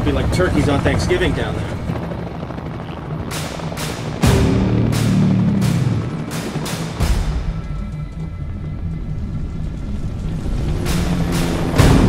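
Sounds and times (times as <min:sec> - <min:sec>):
deep percussion hit: 0:04.2 - 0:07.9, 0:10.8 - 0:12.0.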